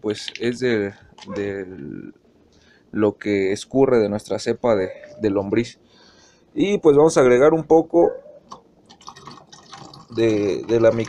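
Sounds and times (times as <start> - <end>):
liquid dripping and trickling: 8.9 - 11.0.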